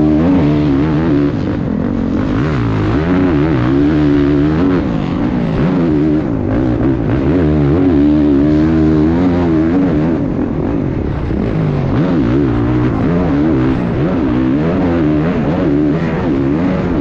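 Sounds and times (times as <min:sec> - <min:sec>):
motocross bike engine revving: 0:00.0 - 0:17.0.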